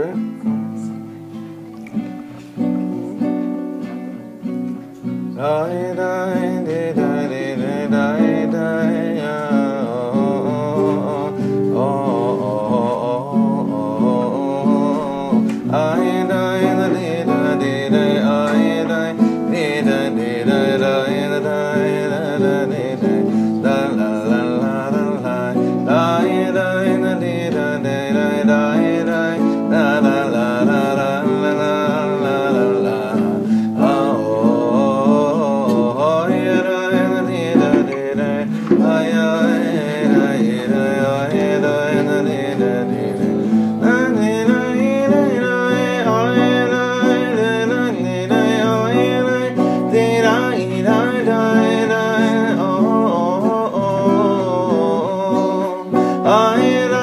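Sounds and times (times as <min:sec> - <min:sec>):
man singing wordless melody: 0:00.0 - 0:57.0
nylon-string guitar: 0:00.0 - 0:57.0.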